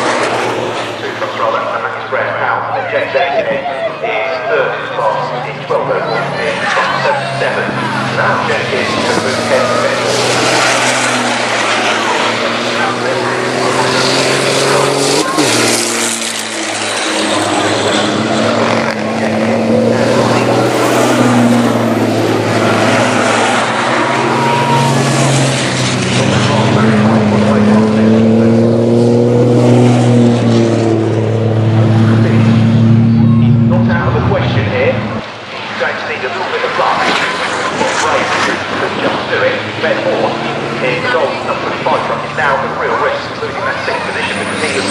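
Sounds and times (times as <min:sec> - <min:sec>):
racing truck engines passing: 0:00.0 - 0:44.9.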